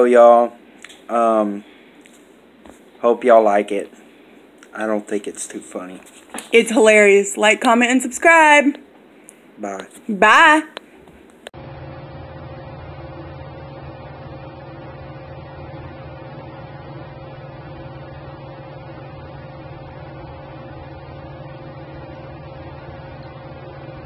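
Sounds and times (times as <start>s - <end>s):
ceiling fan humming: 0.0s - 24.0s.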